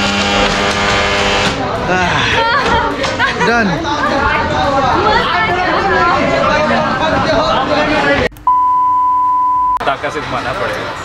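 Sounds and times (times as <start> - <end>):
people talking and laughing: 0.3 - 8.4
high test-tone beep: 8.4 - 9.8.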